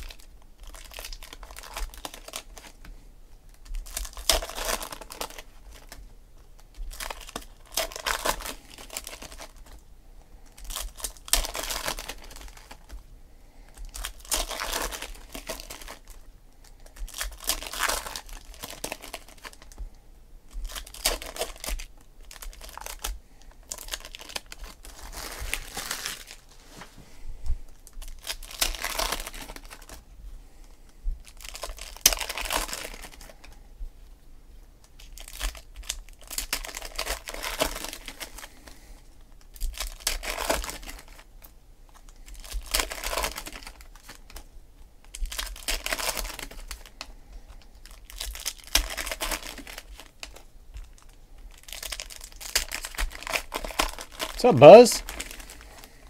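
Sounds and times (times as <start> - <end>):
foil wrappers crinkling and tearing: 0.0 - 9.8, 10.4 - 13.0, 13.6 - 19.9, 20.5 - 26.9, 27.7 - 30.0, 31.2 - 33.6, 34.8 - 56.0.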